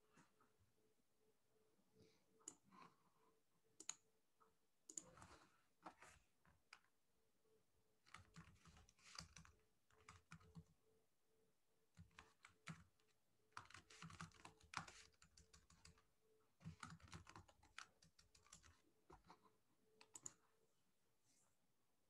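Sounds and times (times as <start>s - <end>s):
typing on computer keyboard: 4.9s - 5.3s, 8.0s - 10.8s, 12.0s - 19.3s, 20.0s - 20.4s.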